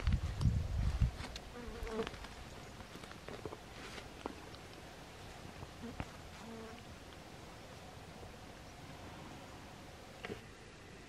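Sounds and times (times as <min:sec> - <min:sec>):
insect buzzing: 0:01.4 - 0:02.3, 0:05.7 - 0:07.0.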